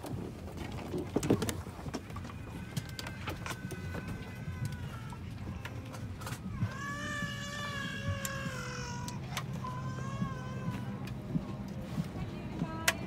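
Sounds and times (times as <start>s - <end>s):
passengers moving bags and seats: 0.0s - 13.0s
airliner cabin hum: 1.6s - 13.0s.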